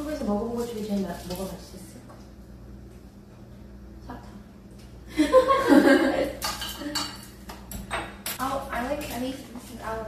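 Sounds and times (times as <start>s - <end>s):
chopsticks and dishes clinking: 6.4s - 9.2s.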